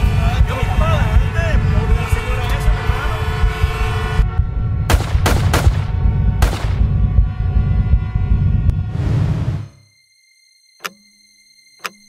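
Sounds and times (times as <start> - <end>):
steady low rumble: 0.0 - 9.7
sharp bangs: 4.9 - 7.0.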